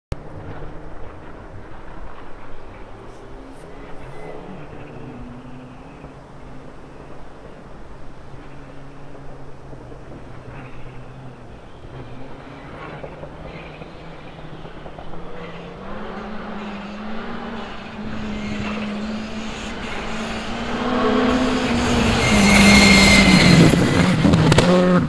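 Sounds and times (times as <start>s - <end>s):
rally car engine running hard: 8.4s - 25.0s.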